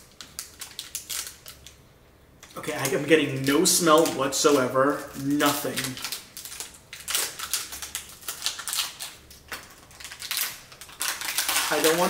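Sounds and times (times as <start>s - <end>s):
plastic wrapper crackling: 0.0s - 1.8s, 2.4s - 12.0s.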